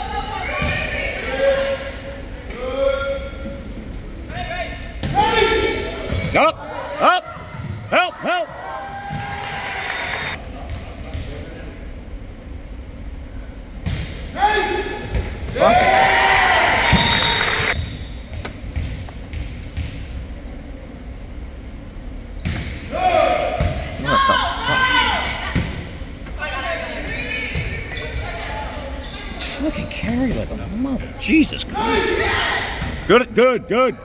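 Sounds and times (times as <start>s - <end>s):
people shouting and cheering: 6.4s - 10.4s, 15.5s - 17.8s, 22.9s - 25.5s.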